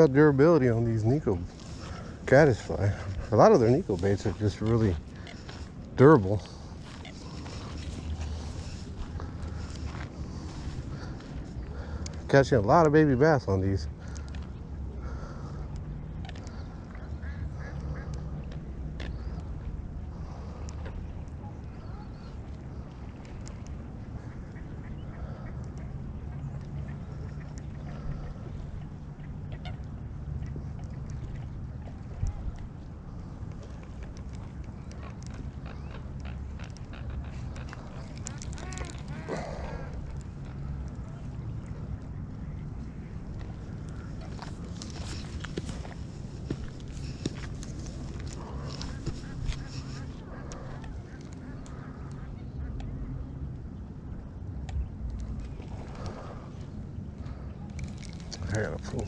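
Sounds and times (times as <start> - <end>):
waterfowl calling: 0.0 - 53.5
wind rumble on microphone: 13.5 - 59.0.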